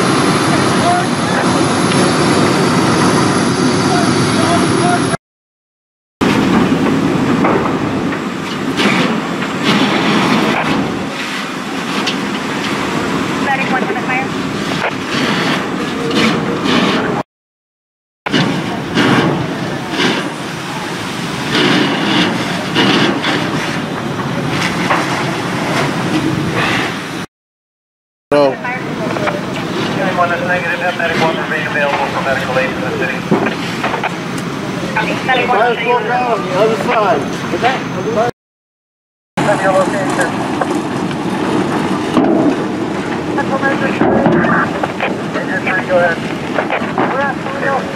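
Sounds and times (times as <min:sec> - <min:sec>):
fire engines running: 0:00.0 - 0:05.2, 0:06.2 - 0:17.2, 0:18.3 - 0:27.3, 0:28.3 - 0:38.3, 0:39.4 - 0:47.9
indistinct voices: 0:28.3 - 0:38.3, 0:43.0 - 0:47.9.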